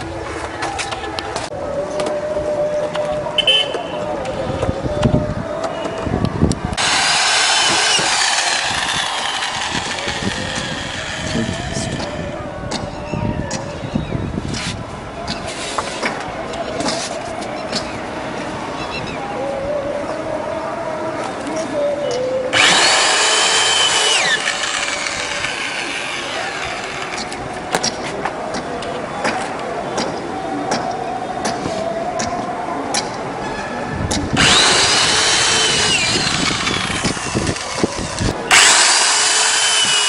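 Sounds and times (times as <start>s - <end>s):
electric drill motor whine: 6.8s - 12.2s, 22.5s - 27.4s, 34.4s - 40.0s.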